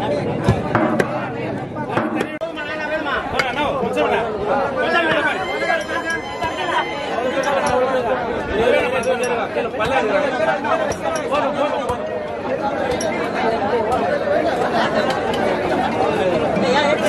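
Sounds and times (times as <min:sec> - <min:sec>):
men talking over one another: 0:00.0 - 0:17.0.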